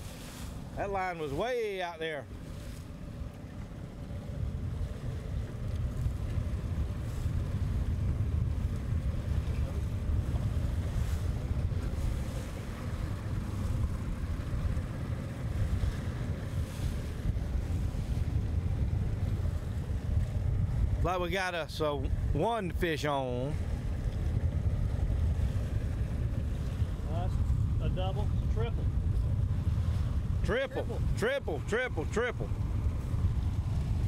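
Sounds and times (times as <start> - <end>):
boat engine rumble: 0.0 - 34.0
boat wake wash: 0.0 - 34.0
wind buffeting microphone: 0.0 - 34.0.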